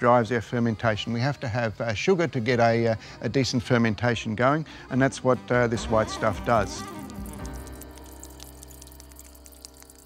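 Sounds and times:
juice dripping onto wet surface: 6.3 - 10.0.

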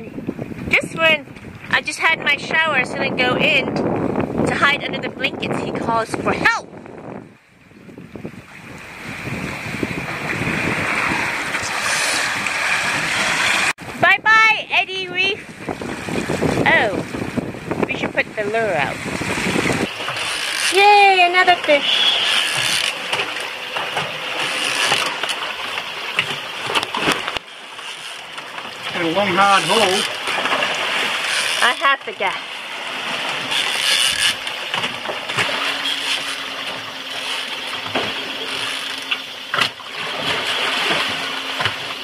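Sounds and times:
water rushing past boat: 0.0 - 42.0
wind rushing: 2.9 - 14.0, 15.4 - 20.0.

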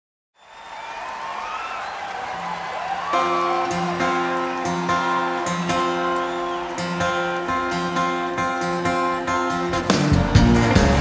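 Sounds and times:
crowd cheering and whistling: 0.4 - 11.0
guitar strumming chords: 3.1 - 11.0.

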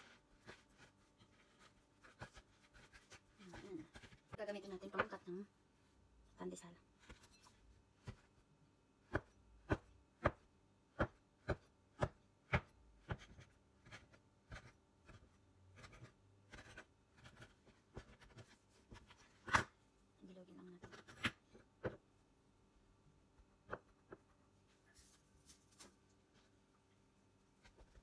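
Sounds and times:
dough cutter chopping on board: 9.0 - 17.4.

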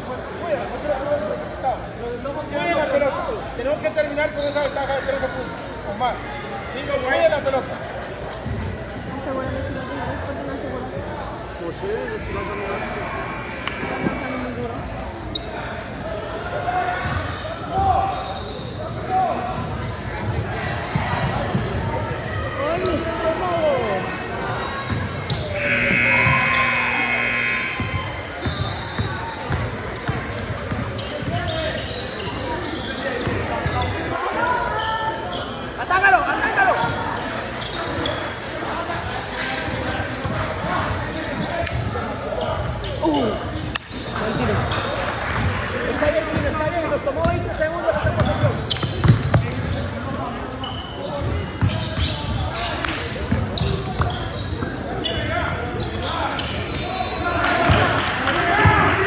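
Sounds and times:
steady buzzer tone: 12.4 - 14.6, 25.5 - 28.6
people calling out: 25.6 - 28.4.

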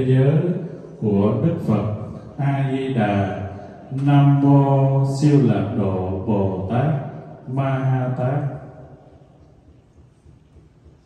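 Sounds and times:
man chanting through microphone: 0.0 - 9.1.

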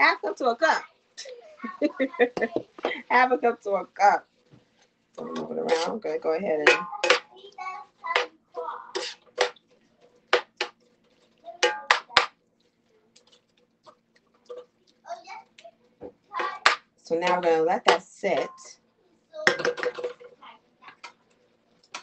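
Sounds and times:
metal utensil scraping skillet: 5.2 - 7.3, 8.1 - 12.2.

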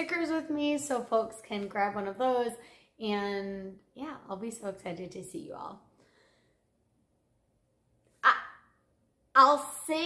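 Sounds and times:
woman saying a syllable: 8.2 - 8.6.

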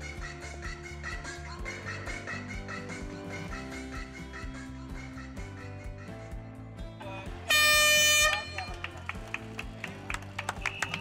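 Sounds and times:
background music: 0.0 - 11.0
air horn blast: 7.4 - 8.6.

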